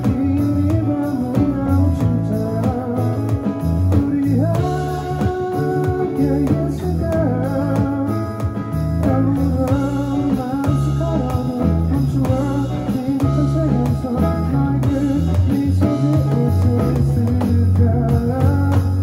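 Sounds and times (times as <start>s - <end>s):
acoustic guitar: 0.0s - 19.0s
drums on electronic drum pad: 0.0s - 19.0s
electric bass: 0.0s - 19.0s
person singing: 0.0s - 19.0s.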